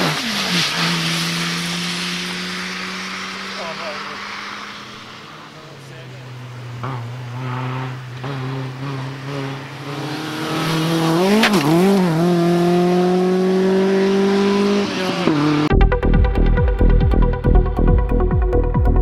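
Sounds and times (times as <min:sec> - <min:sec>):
rally car engine accelerating: 0:00.0 - 0:19.0
electronic music: 0:15.7 - 0:19.0.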